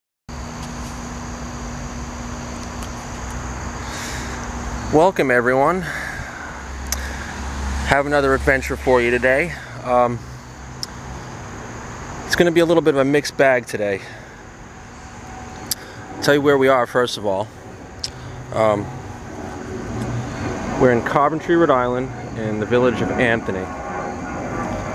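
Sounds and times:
high-pitched whine: 0.3s - 24.9s
steady low hum: 0.3s - 24.9s
low rumble: 15.2s - 24.9s.

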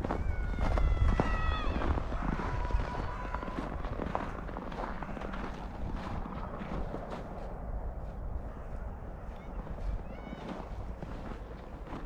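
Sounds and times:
footsteps crunching on snow: 0.0s - 12.0s.

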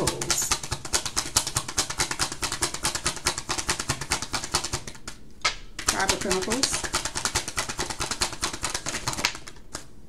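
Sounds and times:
cards being shuffled: 0.0s - 9.9s.

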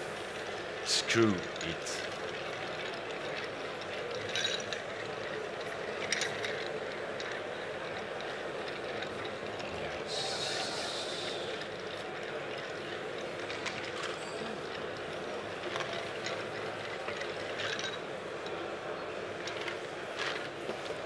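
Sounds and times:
hall background noise: 0.0s - 21.0s.

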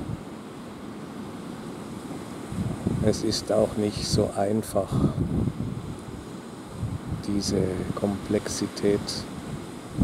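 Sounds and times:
small waves washing onto sand: 0.0s - 10.0s
wind rumbling on microphone: 0.0s - 10.0s.

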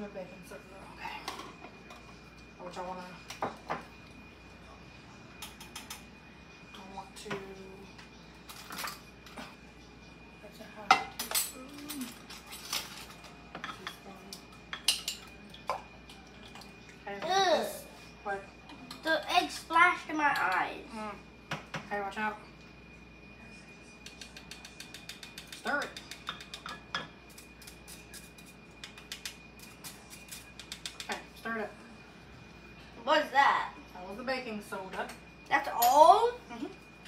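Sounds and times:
wire whisk clinking against glass: 14.7s - 15.3s, 24.2s - 31.1s.

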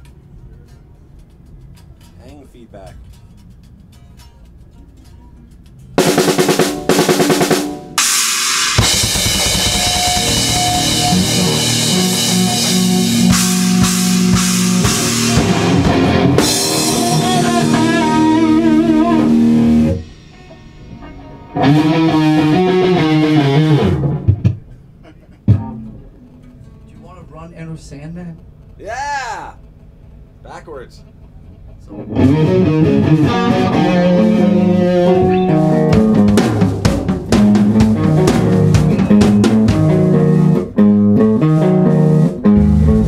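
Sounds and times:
heavy metal band playing: 6.0s - 24.6s, 31.9s - 43.0s
wavering guitar bends: 8.8s - 27.1s, 31.6s - 43.0s.

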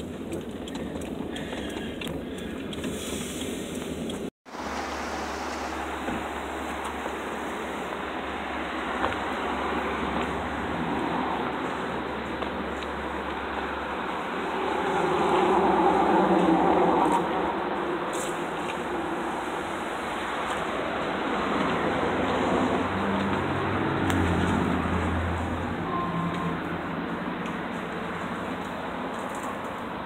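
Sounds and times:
road traffic noise: 0.0s - 30.0s
vehicle passing by: 4.5s - 30.0s.

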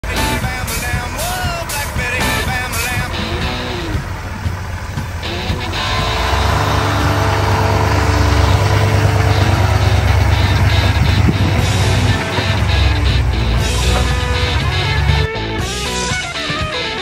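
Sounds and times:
pickup truck engine rumbling: 0.0s - 17.0s
rock music: 0.0s - 17.0s.

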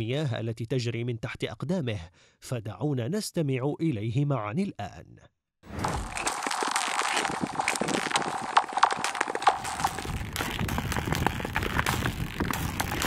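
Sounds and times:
skate blades scraping ice: 5.7s - 13.0s.

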